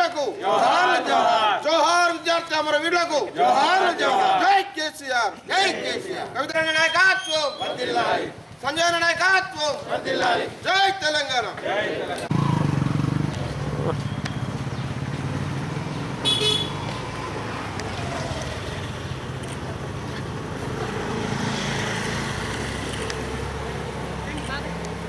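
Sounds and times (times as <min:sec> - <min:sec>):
vehicles running: 0:05.4 - 0:25.0.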